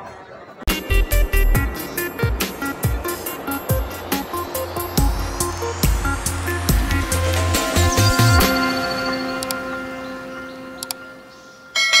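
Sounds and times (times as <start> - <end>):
bell-like chime: 7.0 - 12.0
bright bell chime: 7.0 - 12.0.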